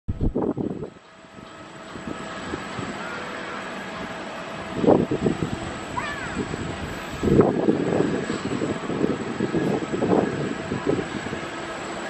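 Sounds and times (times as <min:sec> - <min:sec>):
distant jet engines: 0:00.1 - 0:12.0
wind buffeting microphone: 0:00.1 - 0:12.0.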